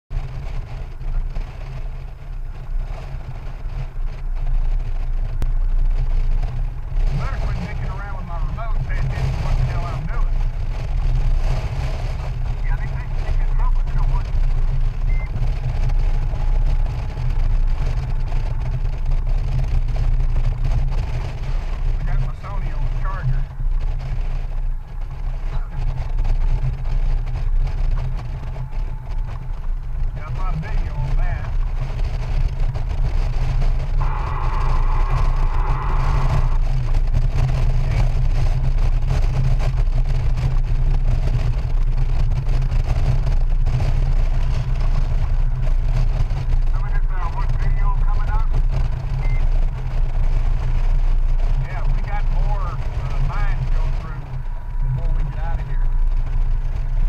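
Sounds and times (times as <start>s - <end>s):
motorcycle engine rumble: 0.0s - 57.0s
wind rush on microphone: 0.1s - 57.0s.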